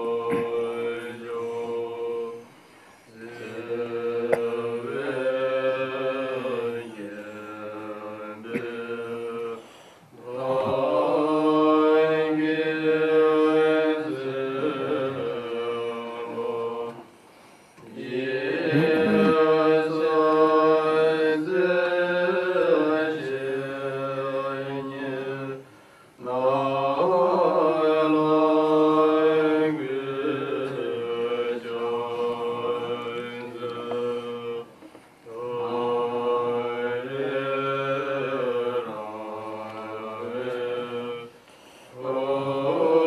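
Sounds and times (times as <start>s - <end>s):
monks chanting: 0.0s - 2.5s, 3.1s - 17.2s, 17.8s - 43.0s.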